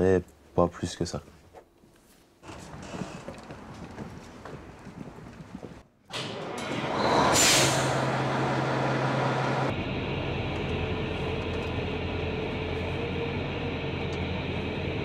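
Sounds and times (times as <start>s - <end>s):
diesel engine idling: 7.8s - 15.0s.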